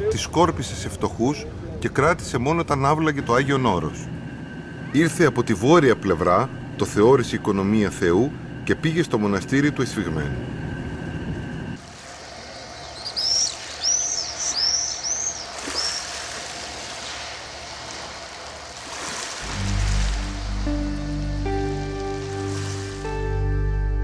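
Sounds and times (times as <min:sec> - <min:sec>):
soft outdoor ambience: 0:00.0 - 0:23.7
small bird chirping: 0:12.2 - 0:16.2
slow ambient music: 0:18.8 - 0:24.0.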